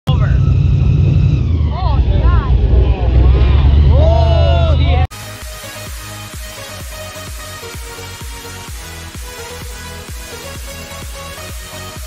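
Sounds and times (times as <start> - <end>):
airboat engine running: 0.1 - 5.2
people's voices: 1.6 - 5.1.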